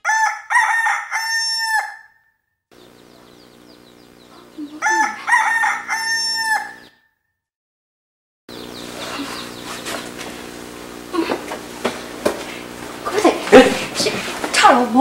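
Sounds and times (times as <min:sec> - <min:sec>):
rooster crowing: 0:00.0 - 0:02.3, 0:03.1 - 0:07.1.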